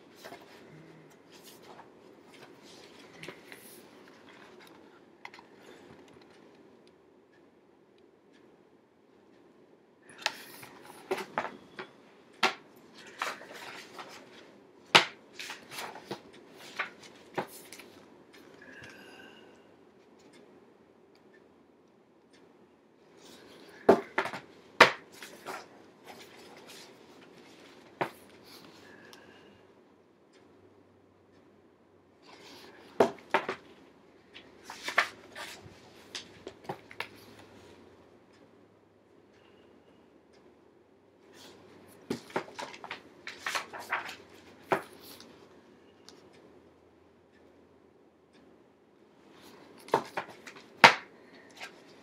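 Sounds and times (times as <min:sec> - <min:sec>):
book pages turning: 0:00.1 - 0:05.8, 0:10.2 - 0:14.4, 0:15.0 - 0:18.0, 0:23.3 - 0:28.7, 0:34.4 - 0:37.4, 0:41.4 - 0:45.3, 0:49.4 - 0:52.0
papers rustling: 0:10.3 - 0:14.4, 0:15.0 - 0:18.0, 0:34.4 - 0:37.2, 0:41.4 - 0:45.3, 0:49.4 - 0:52.0.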